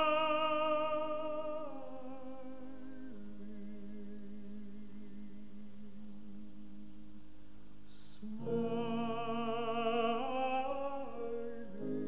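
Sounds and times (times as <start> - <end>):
tenor voice singing with vibrato: 0.0 - 6.8, 7.9 - 12.0.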